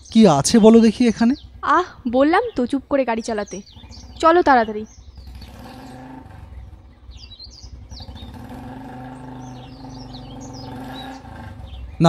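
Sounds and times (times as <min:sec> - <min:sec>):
birds chirping: 0:00.0 - 0:12.0
motorcycle engine running: 0:00.0 - 0:12.0.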